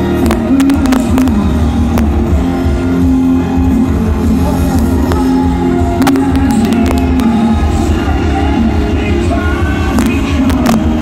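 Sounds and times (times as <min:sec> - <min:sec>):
distorted guitars and bass: 0:00.0 - 0:11.0.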